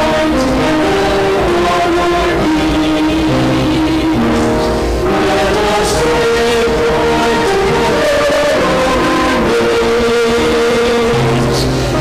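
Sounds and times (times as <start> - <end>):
church singing with instruments: 0.0 - 12.0.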